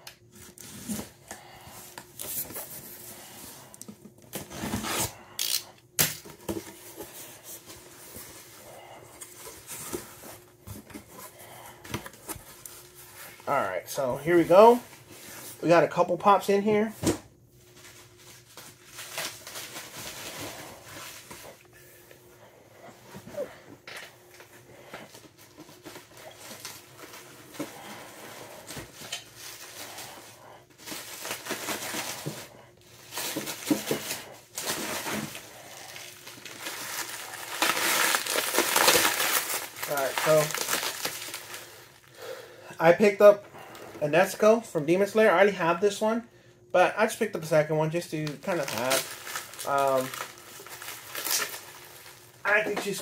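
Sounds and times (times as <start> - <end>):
plastic packaging crinkling: 17.7 - 21.6, 25.1 - 42.3, 47.9 - 53.0.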